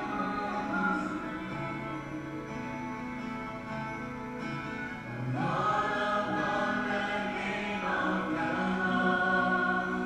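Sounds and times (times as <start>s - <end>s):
people singing worship song: 0.0s - 2.0s, 5.2s - 10.0s
strummed guitar: 0.0s - 10.0s.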